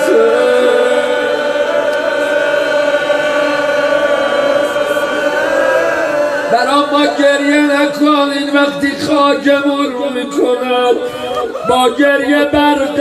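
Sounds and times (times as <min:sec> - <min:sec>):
person chanting a lament: 0:00.0 - 0:13.0.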